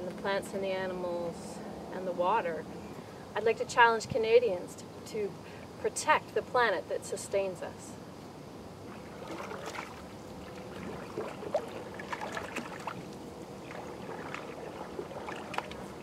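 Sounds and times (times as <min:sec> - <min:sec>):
canoe paddle strokes in water: 0:08.8 - 0:16.0
water splashes and drips: 0:08.9 - 0:16.0.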